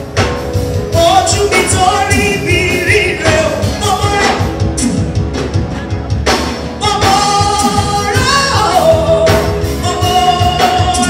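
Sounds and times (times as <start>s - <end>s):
band with drums and cymbals: 0.0s - 11.0s
woman singing gospel: 0.9s - 5.0s, 6.8s - 11.0s.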